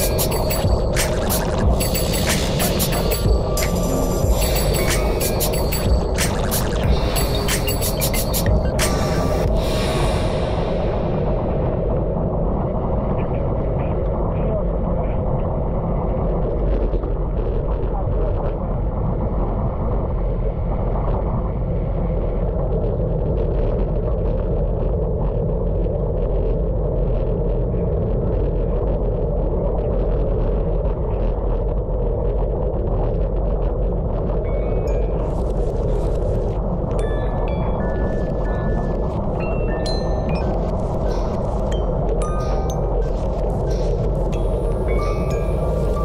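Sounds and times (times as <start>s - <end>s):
wind rushing: 0.0s - 14.8s.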